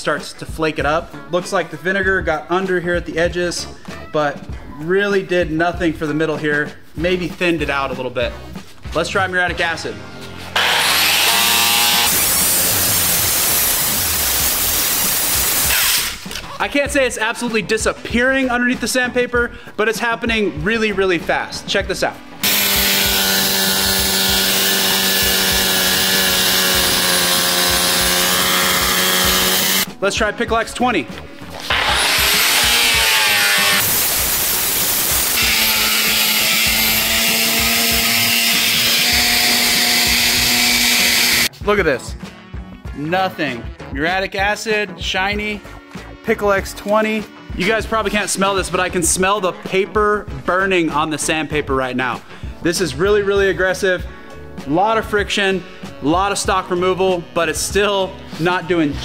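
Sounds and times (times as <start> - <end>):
angle grinder grinding steel: 10.3 - 16.5, 22.4 - 29.9, 31.5 - 41.5.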